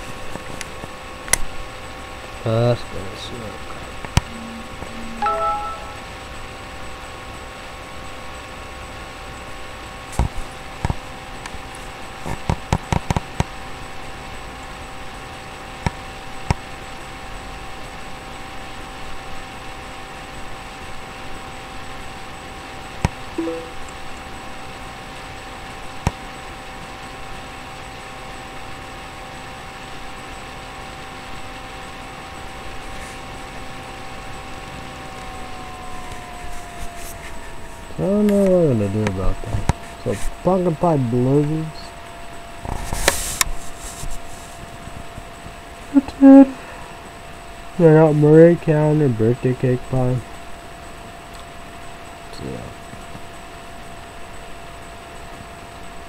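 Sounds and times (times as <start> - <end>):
steady electronic hum: 1.8 - 6.8, 23.4 - 24.4.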